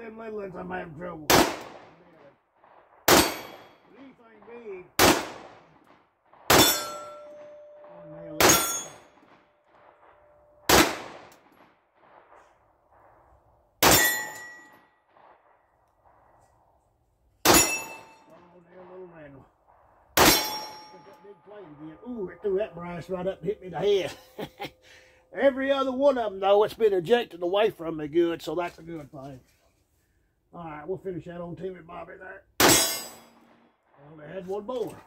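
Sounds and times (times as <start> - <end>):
pistol shots: 1.3 - 2.2, 2.8 - 12.6, 13.8 - 15.6, 17.4 - 18.2, 20.2 - 20.9, 32.6 - 33.6
steel target ringing: 3.1 - 3.8, 6.5 - 9.3, 13.8 - 14.8, 17.5 - 18.3, 20.2 - 24.4, 32.6 - 33.6.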